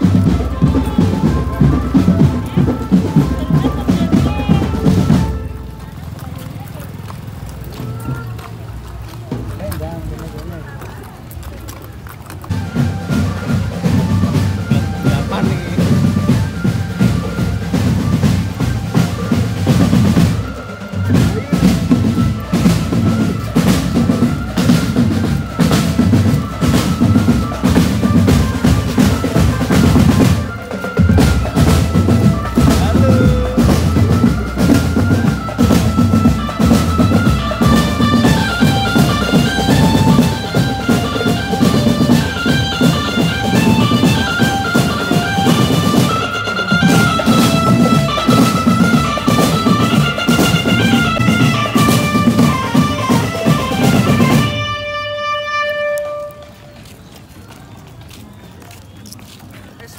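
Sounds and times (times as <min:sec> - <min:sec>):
bass drums and snare drums: 0:00.0 - 0:56.4.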